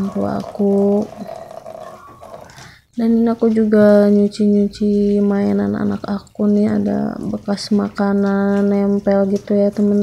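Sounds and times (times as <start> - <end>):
dishes being rinsed: 0.0 - 10.0.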